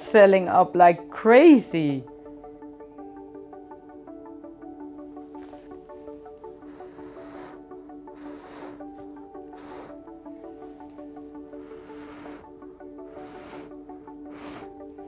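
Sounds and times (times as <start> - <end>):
background music with held tones: 0.0 - 15.0
short puffs of breath: 6.6 - 10.6, 11.5 - 15.0.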